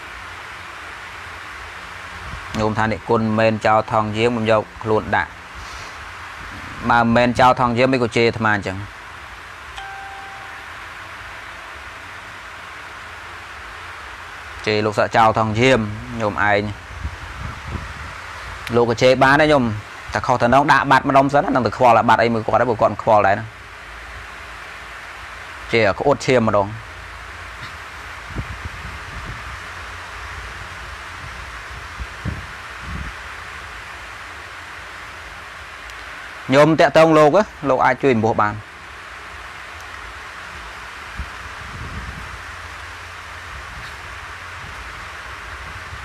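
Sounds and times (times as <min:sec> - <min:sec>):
steady background hiss: 0:00.0 - 0:46.0
faint high tone: 0:09.8 - 0:11.0.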